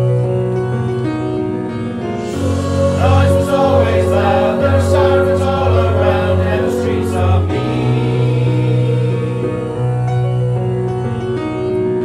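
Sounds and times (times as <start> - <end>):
mixed choir singing chords: 2.0 - 10.8.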